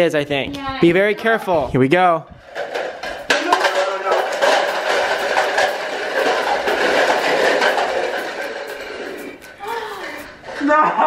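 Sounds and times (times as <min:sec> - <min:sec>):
plastic cups clattering down: 0:02.4 - 0:09.6.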